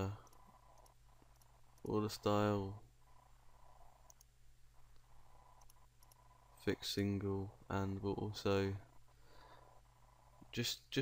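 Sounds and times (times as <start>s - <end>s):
faint steady hum: 0.0s - 11.0s
computer mouse clicks: 0.2s - 1.9s, 4.0s - 4.3s, 4.9s - 6.3s.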